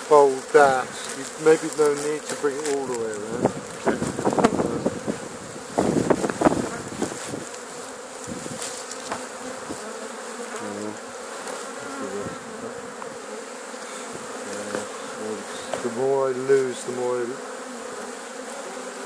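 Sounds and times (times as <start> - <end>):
bees buzzing: 0.0 - 19.0
knocks and rustles: 8.2 - 9.8.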